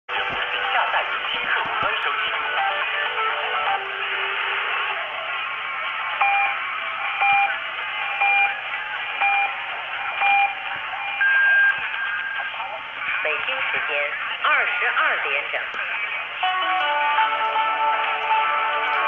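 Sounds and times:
faint radio station audio: 0:00.1 - 0:19.0
radio hiss: 0:11.7 - 0:16.4.

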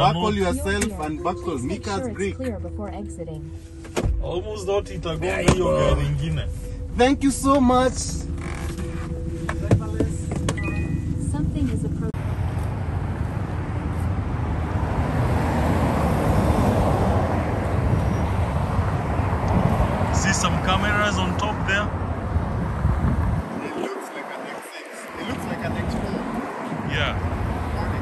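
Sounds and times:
city street traffic: 0:00.0 - 0:28.0.

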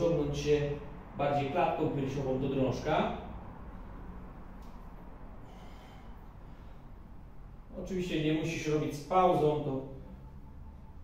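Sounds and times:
low steady hum: 0:00.0 - 0:11.0
man breathing through nose: 0:05.4 - 0:07.0.

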